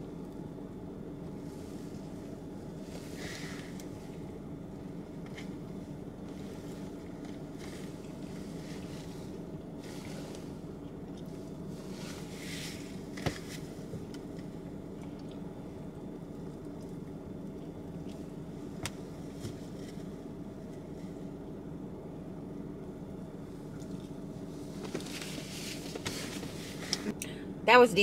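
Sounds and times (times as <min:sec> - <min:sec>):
car engine idling: 0:00.0 - 0:28.0.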